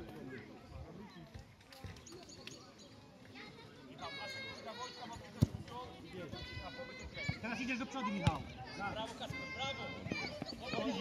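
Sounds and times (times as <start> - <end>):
children shouting: 6.2 - 11.0.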